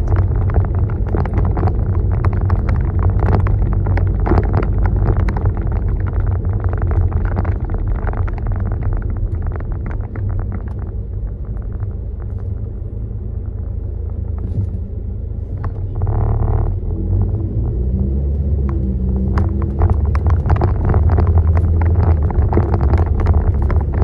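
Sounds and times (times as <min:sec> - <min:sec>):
knocks and rattles: 0:00.0 - 0:12.6, 0:18.6 - 0:24.0
car engine and road rumble: 0:00.0 - 0:24.0.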